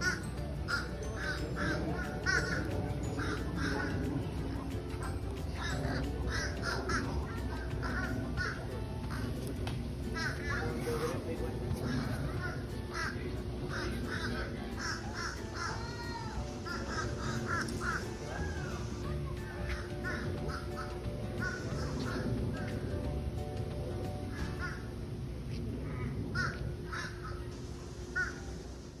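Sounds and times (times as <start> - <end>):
birds cawing: 0.0 - 23.1, 24.1 - 25.0, 25.8 - 27.5, 28.1 - 28.5.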